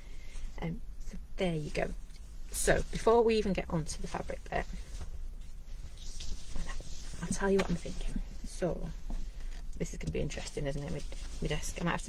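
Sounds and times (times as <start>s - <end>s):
tea towel rustling: 2.6s - 8.3s.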